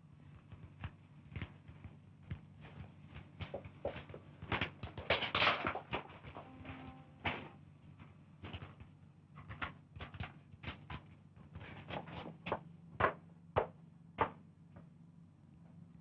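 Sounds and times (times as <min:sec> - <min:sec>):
knocks scrapes and bumps of struggle: 0:02.5 - 0:13.2.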